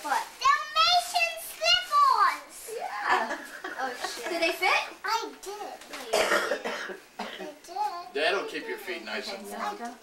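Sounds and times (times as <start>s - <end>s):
young child talking: 0.3s - 2.8s, 5.0s - 6.4s, 7.3s - 8.8s
child coughing: 6.0s - 7.6s.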